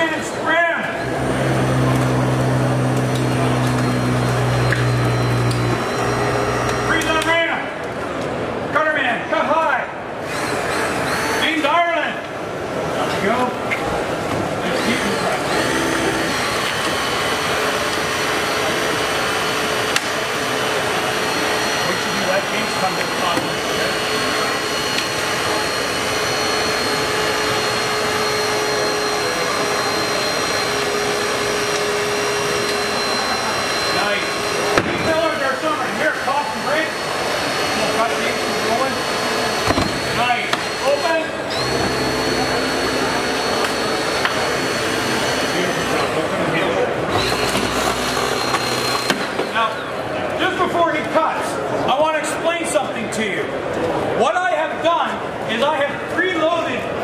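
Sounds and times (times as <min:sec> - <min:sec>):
hydraulic spreader motor whine: 0:00.0 - 0:07.6, 0:10.2 - 0:11.7, 0:14.0 - 0:50.2.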